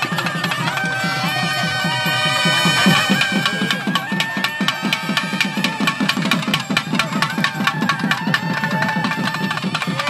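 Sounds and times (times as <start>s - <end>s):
rapid drumming: 0.0s - 10.0s
reed pipe melody: 0.0s - 10.0s.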